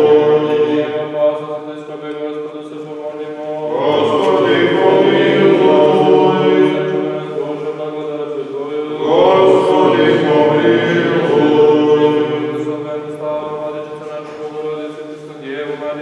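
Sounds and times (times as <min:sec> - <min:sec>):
voices chanting long held notes: 0:00.0 - 0:16.0.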